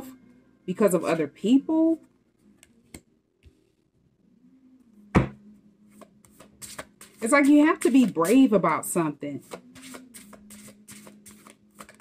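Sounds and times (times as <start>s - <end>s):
cards being shuffled: 6.0s - 7.3s, 9.4s - 12.0s.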